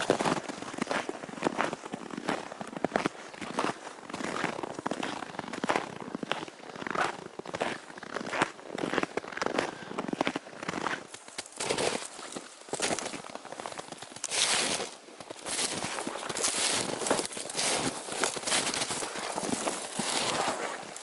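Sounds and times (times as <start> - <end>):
boots crunching through snow: 0.0 - 21.0.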